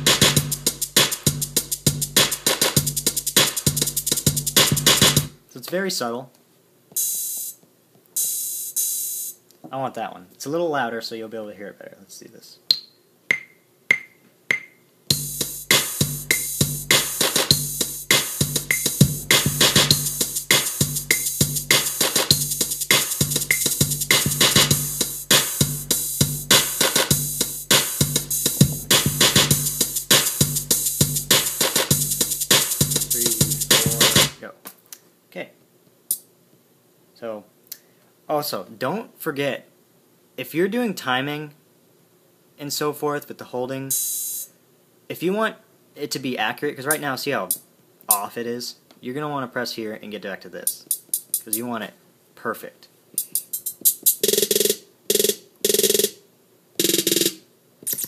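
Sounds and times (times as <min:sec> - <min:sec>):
looping electronic drum pattern: 0:00.0 - 0:05.4, 0:07.0 - 0:07.6, 0:08.2 - 0:09.4, 0:13.3 - 0:34.4, 0:53.2 - 0:56.2, 0:56.8 - 0:58.0.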